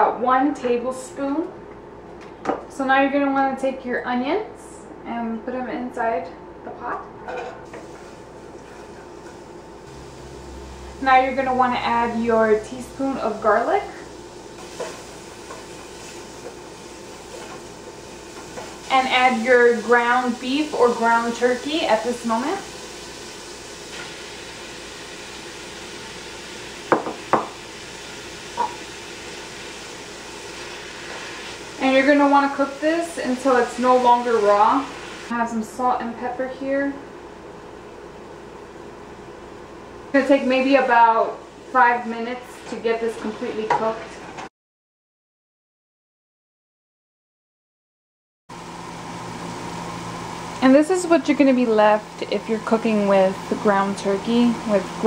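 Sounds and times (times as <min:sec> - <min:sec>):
low hum with hiss: 0:00.0 - 0:44.4, 0:48.6 - 0:55.0
meat sizzling in hot oil: 0:07.7 - 0:11.1, 0:11.9 - 0:35.3, 0:48.6 - 0:55.0
knocks against a pot: 0:26.9 - 0:27.6.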